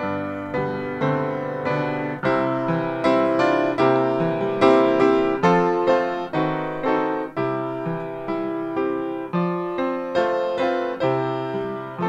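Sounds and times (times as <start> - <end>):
upright piano chords: 0.0 - 12.0.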